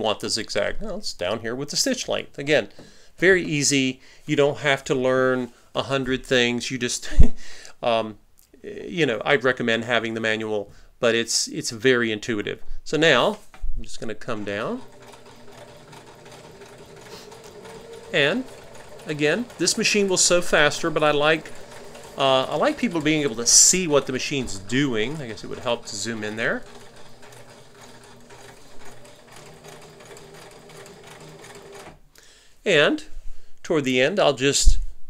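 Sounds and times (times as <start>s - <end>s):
sewing machine stitching: 14.3s - 32.0s.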